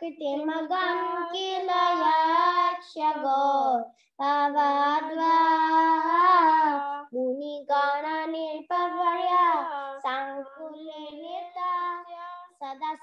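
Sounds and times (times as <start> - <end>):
children chanting a slow melody: 0.0 - 13.0.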